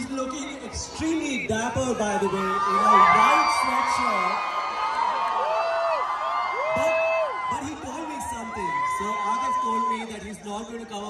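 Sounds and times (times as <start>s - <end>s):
crowd cheering and whooping: 1.8s - 11.0s.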